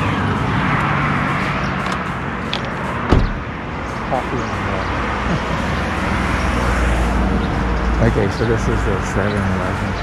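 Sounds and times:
highway traffic rumbling: 0:00.0 - 0:10.0.

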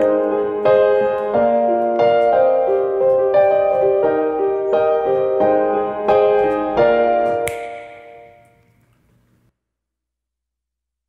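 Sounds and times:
piano chord ringing out: 0:00.0 - 0:08.6.

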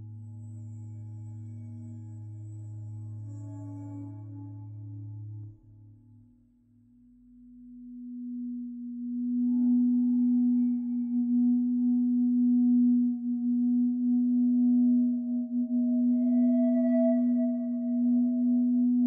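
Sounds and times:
higher sustained synth tones: 0:08.2 - 0:19.0.

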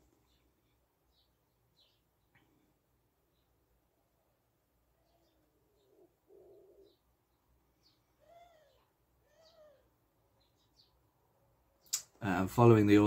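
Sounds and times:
faint high bird chirps: 0:00.0 - 0:02.7, 0:03.3 - 0:11.1
bird calls: 0:04.9 - 0:11.0.

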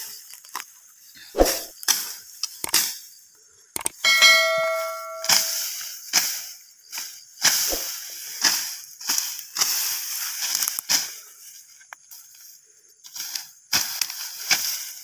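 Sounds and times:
machete slashing grass: 0:01.4 - 0:01.7, 0:07.6 - 0:08.0
metallic ring: 0:04.0 - 0:05.7.

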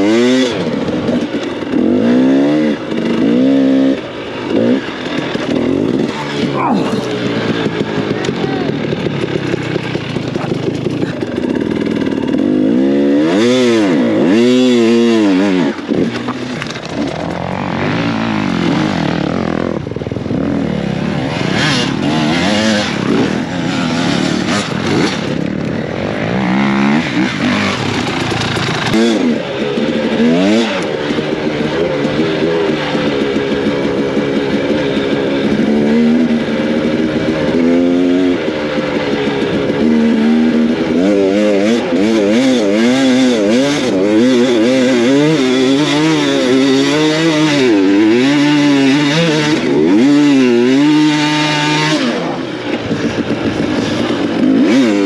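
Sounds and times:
dirt bike engine revving: 0:00.0 - 0:55.0.

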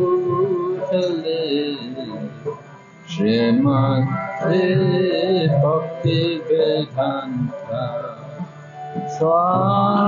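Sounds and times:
instrumental accompaniment: 0:00.0 - 0:10.0
person singing a devotional chant: 0:00.0 - 0:10.0.

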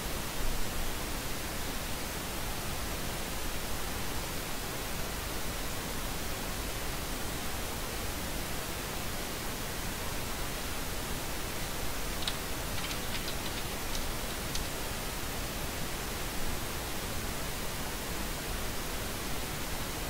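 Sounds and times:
steady background hiss: 0:00.0 - 0:20.0.

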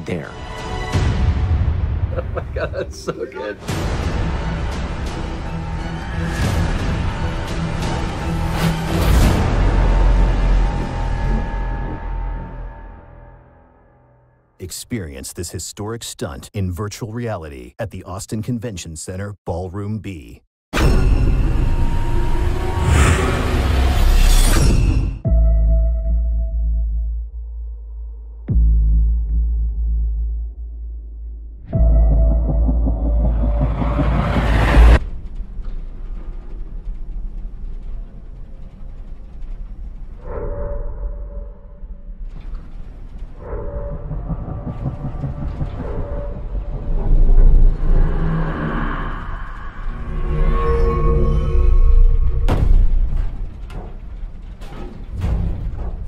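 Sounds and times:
dark trailer music: 0:00.0 - 0:16.6, 0:20.7 - 0:56.0
heavy low rumble: 0:27.2 - 0:40.3, 0:40.9 - 0:56.0.

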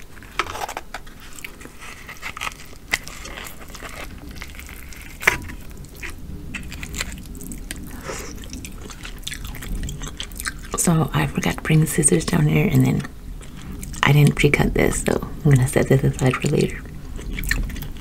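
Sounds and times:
soft squishes of meat: 0:00.0 - 0:10.8
shell crackling and snapping: 0:00.2 - 0:10.8.

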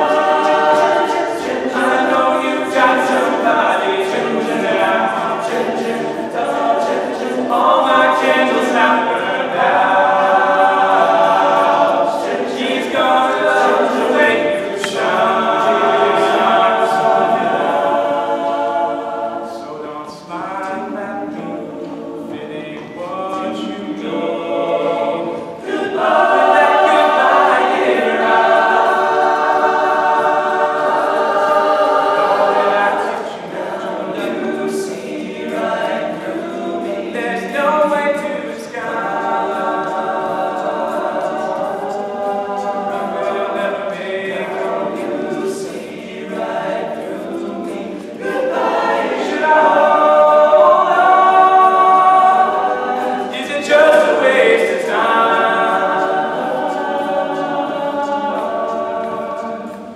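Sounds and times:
male a cappella group singing: 0:00.0 - 0:59.9.

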